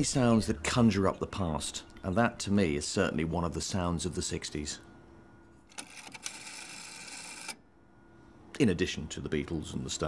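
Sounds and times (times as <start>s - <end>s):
rotary dial whirring and clicking: 5.4s - 7.6s.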